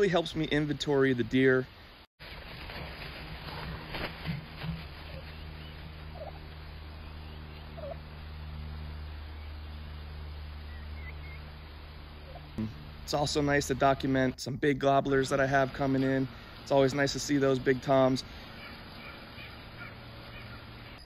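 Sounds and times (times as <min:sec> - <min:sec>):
steady low hum: 0:02.6 - 0:21.0
wild turkeys calling softly: 0:04.7 - 0:08.2, 0:12.2 - 0:12.8, 0:18.2 - 0:21.0.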